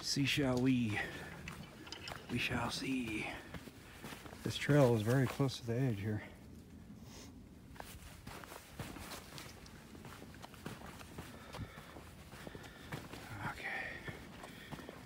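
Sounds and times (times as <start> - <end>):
footsteps on dry leaves and twigs: 0.0 - 6.4, 7.6 - 15.0.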